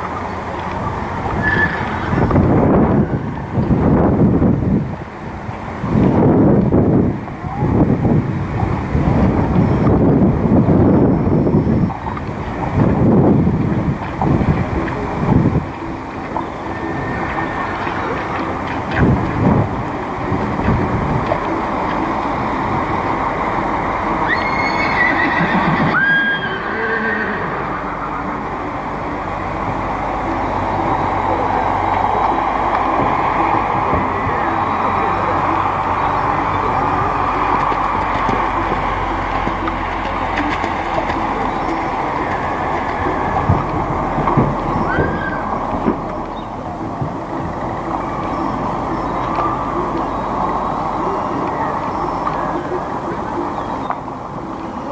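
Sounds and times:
horses cantering on sand: 0:00.0 - 0:54.9
short high rising calls: 0:21.5 - 0:40.4, 0:41.2 - 0:46.8.

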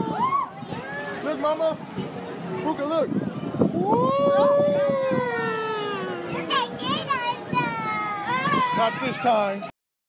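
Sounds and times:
child squealing: 0:03.9 - 0:06.7
child calling: 0:04.3 - 0:08.8.

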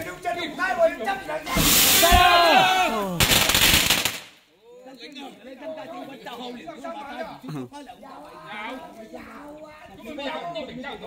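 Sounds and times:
firecrackers going off: 0:01.4 - 0:04.4
man shouting: 0:02.0 - 0:03.3.

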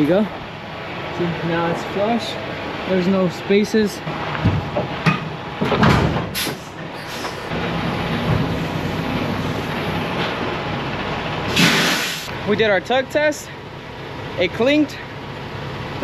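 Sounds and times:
diesel truck engine idling: 0:00.0 - 0:16.0
trailer coupling knocks and clunk: 0:04.1 - 0:06.6
air hiss: 0:11.5 - 0:12.3.

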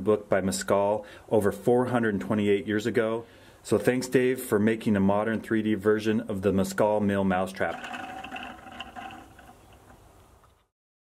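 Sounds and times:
faint background noise: 0:00.0 - 0:10.7.

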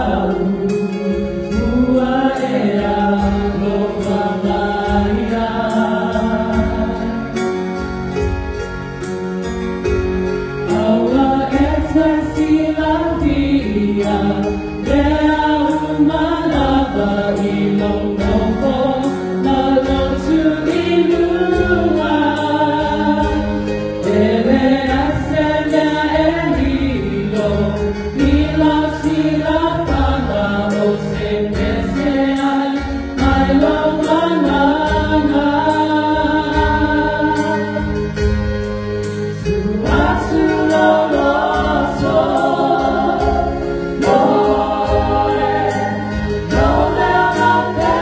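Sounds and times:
women singing a hymn: 0:00.0 - 0:07.6, 0:10.6 - 0:38.5, 0:39.3 - 0:48.0
keyboard accompaniment: 0:00.0 - 0:48.0.

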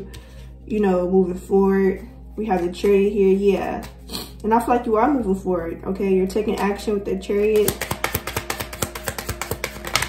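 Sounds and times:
cards being shuffled: 0:07.6 - 0:10.0.

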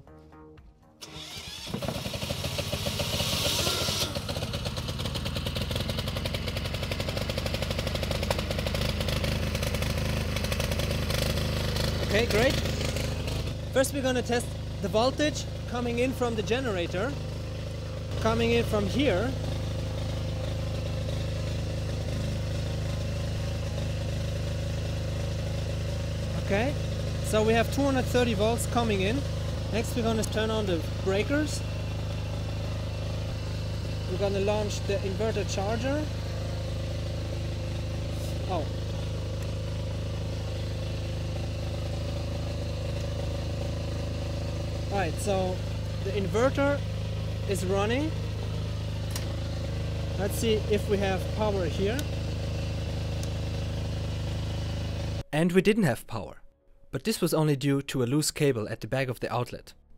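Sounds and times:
diesel generator running: 0:00.0 - 0:55.3.

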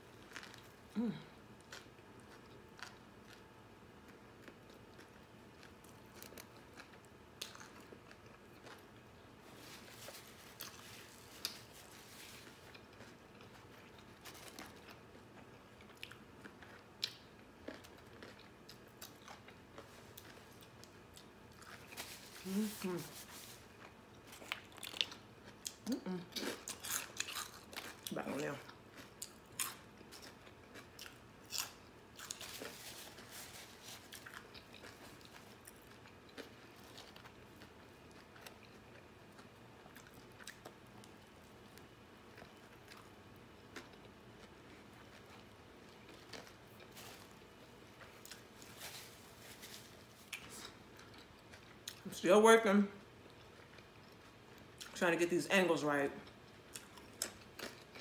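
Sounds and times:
chewing food: 0:00.1 - 0:52.1, 0:53.0 - 0:55.0, 0:56.2 - 0:58.0.

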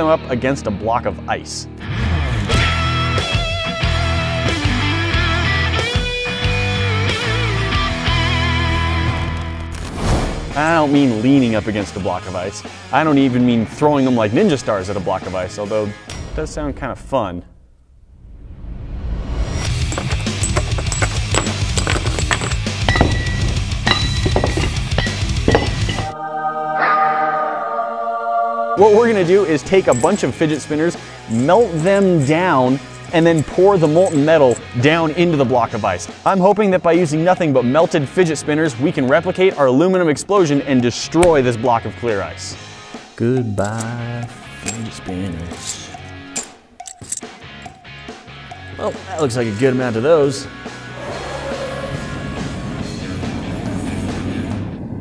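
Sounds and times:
metallic clinks: 0:19.8 - 0:26.1, 0:29.7 - 0:35.0, 0:43.4 - 0:48.1.

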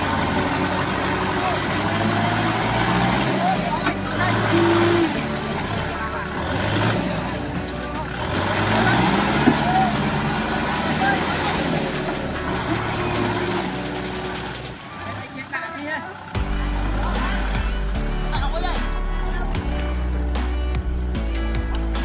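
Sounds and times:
wheels churning in mud: 0:00.0 - 0:17.1
tractor engine under load: 0:00.0 - 0:17.3
people calling out: 0:08.7 - 0:15.4, 0:16.0 - 0:19.6.

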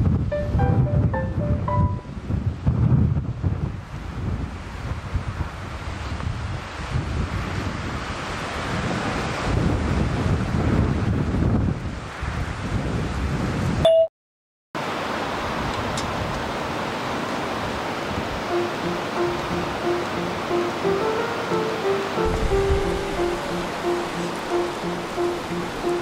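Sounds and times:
wind buffeting microphone: 0:00.0 - 0:13.8, 0:22.2 - 0:26.0
short musical notes: 0:00.3 - 0:02.1, 0:18.5 - 0:26.0.

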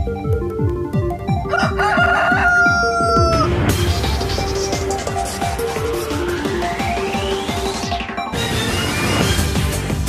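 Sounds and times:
electronic music with kick drum: 0:00.0 - 0:10.0
rooster crowing: 0:01.5 - 0:03.6.

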